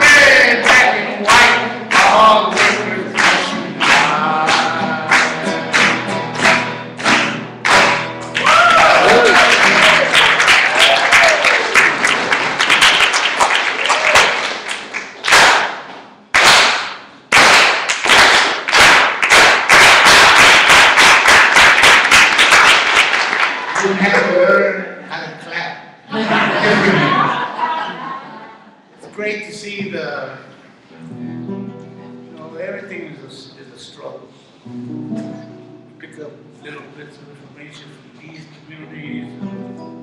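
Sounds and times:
man singing: 0.0 - 6.4
strummed acoustic guitar: 0.0 - 8.4, 30.9 - 32.9, 34.6 - 37.4, 38.7 - 40.0
audience applauding: 0.0 - 24.4
audience shouts: 8.4 - 12.0, 13.8 - 14.5.

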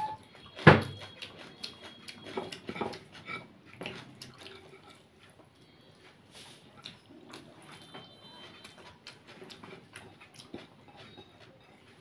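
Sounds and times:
chewing: 0.0 - 12.0
fingers working rice on plate: 1.4 - 5.4.

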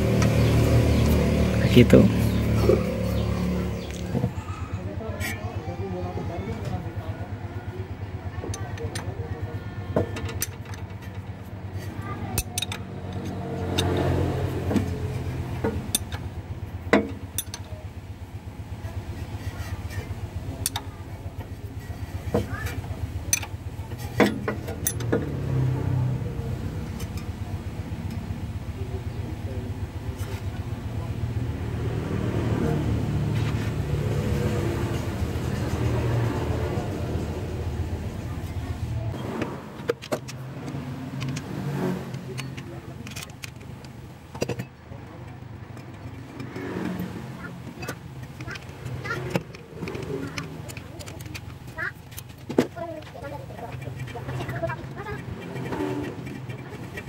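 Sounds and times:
metallic spanner clicks: 12.4 - 14.1, 15.8 - 16.3, 17.3 - 17.7, 23.3 - 25.7, 42.1 - 47.0.

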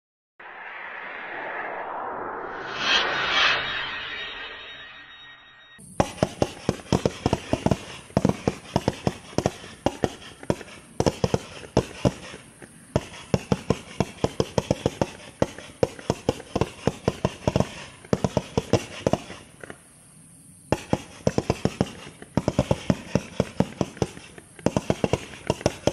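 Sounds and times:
whooshing swell: 0.4 - 5.8.

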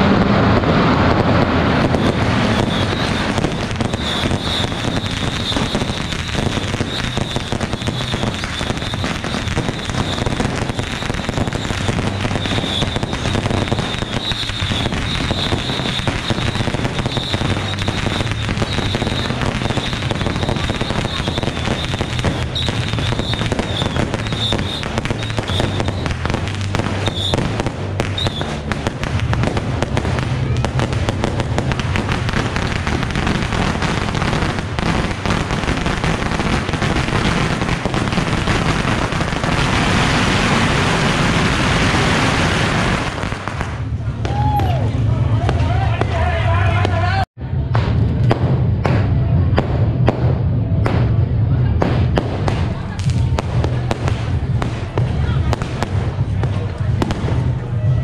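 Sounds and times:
fireworks crackling and popping: 0.0 - 58.0
high firework whistle: 1.8 - 28.7.

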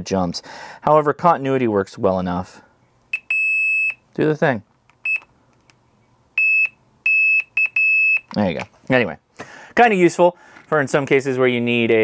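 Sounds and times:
high-pitched multimeter beep: 3.1 - 4.0, 5.0 - 5.3, 6.4 - 8.3.

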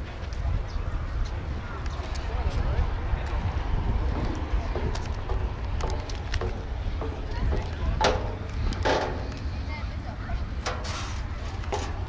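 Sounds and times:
indistinct chatter: 0.0 - 12.0
wind rumbling on microphone: 0.0 - 12.0.

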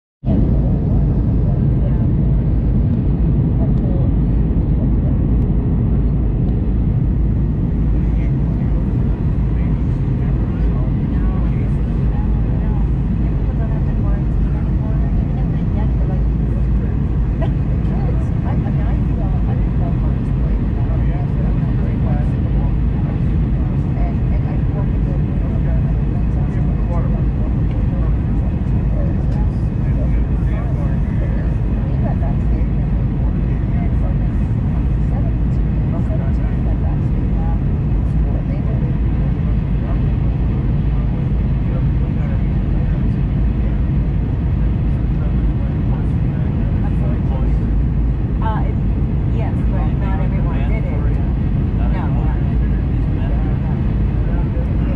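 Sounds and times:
airliner cabin roar: 0.2 - 54.9
passenger voices murmuring: 0.3 - 54.9.

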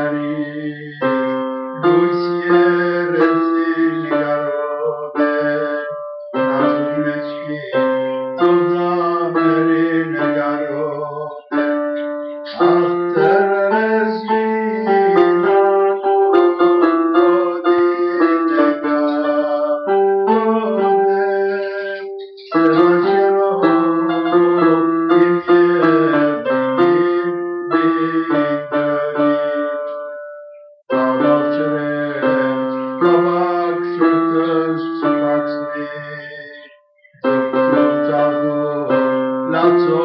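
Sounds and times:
piano melody over chords: 0.0 - 40.0.

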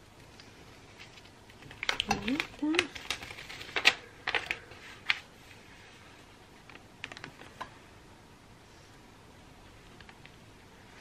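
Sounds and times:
paper crackling and crinkling: 0.4 - 6.0.

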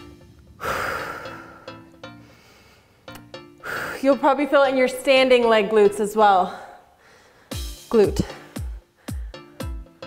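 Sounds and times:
quiet background music: 0.0 - 10.0
woman breathing heavily: 0.5 - 4.1, 6.4 - 10.0.

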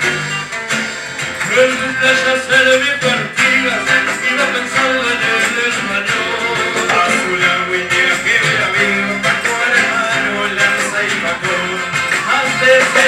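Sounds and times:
band with acoustic guitars: 0.0 - 13.0.

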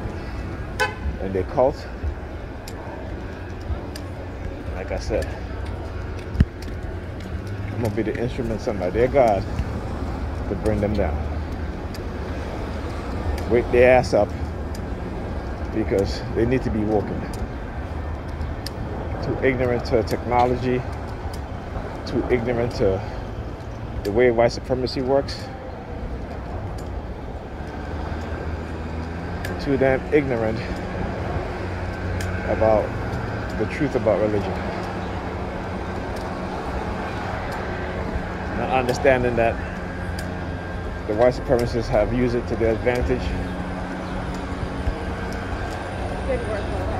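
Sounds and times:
traffic rumble: 0.0 - 46.9.

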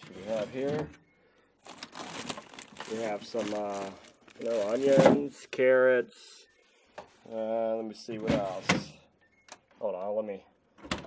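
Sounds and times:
plastic bags crinkling: 1.6 - 5.4.

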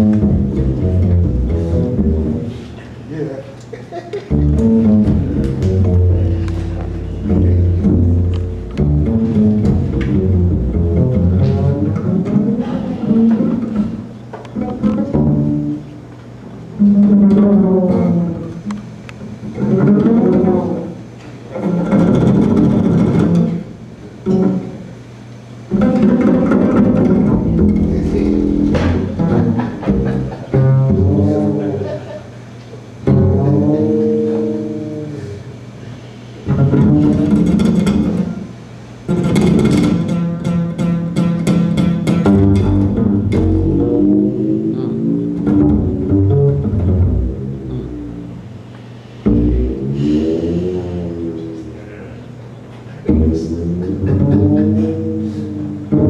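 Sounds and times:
double bass plucked: 0.0 - 3.1, 4.2 - 56.0.

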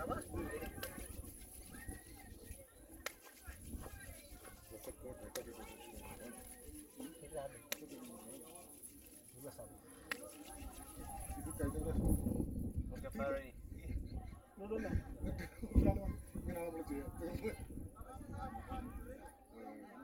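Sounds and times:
faint voices: 0.0 - 20.0.

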